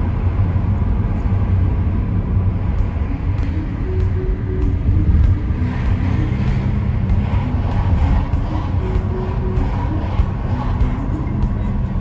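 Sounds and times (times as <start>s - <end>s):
car road and engine rumble: 0.0s - 12.0s
music playing: 2.2s - 12.0s.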